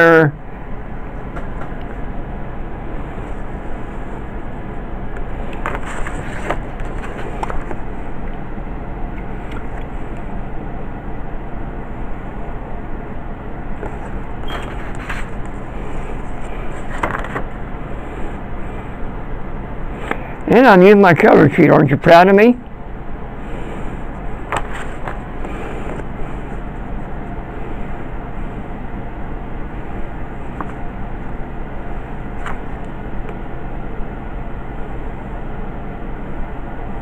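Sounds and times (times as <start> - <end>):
low hum: 0.0 - 37.0.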